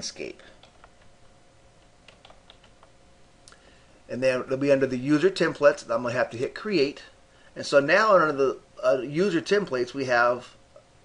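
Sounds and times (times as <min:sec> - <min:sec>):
keyboard typing: 0:00.6 - 0:01.1, 0:01.8 - 0:02.9.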